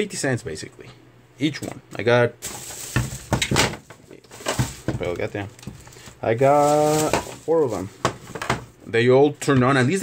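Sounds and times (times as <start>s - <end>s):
plastic amplifier knocking and rattling: 2.9s - 5.8s.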